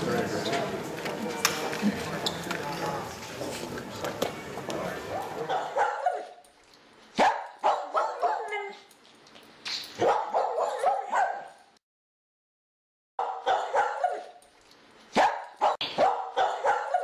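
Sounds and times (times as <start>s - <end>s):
dog barking and yipping: 5.4s - 6.4s, 7.2s - 8.9s, 9.9s - 11.6s, 13.2s - 14.4s, 15.1s - 17.0s.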